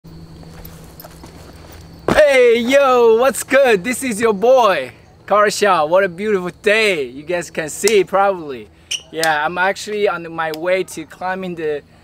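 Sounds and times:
faint steady hum: 0.1s - 12.0s.

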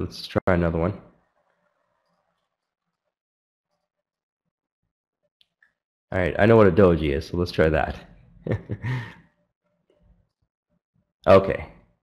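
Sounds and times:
man laughing: 8.5s - 9.2s.

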